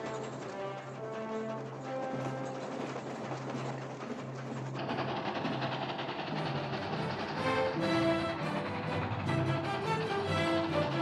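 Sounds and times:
rail clatter: 0:00.0 - 0:11.0
steam locomotive chuffing: 0:00.0 - 0:11.0.

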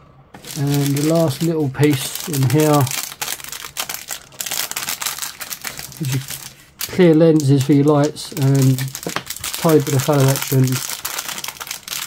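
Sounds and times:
plastic bag crinkling: 0:00.4 - 0:12.0.

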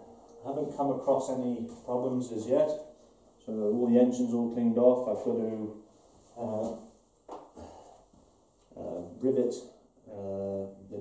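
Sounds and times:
man talking: 0:00.3 - 0:06.9, 0:08.7 - 0:11.0
man breathing: 0:07.5 - 0:08.4.

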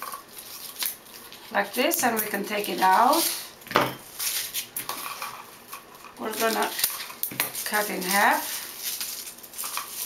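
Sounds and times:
ribbon crinkling and rustling: 0:00.0 - 0:10.0.

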